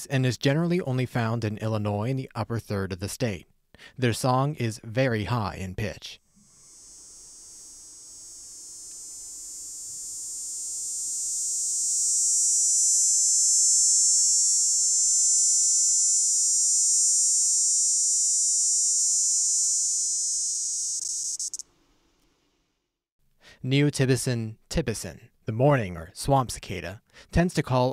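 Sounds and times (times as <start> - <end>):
cicada high-pitched buzz: 6.3 - 21.7.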